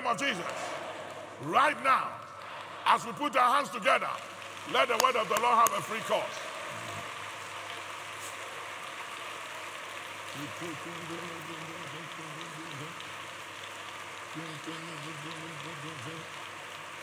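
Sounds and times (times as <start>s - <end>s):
crowd clapping: 0.0s - 17.0s.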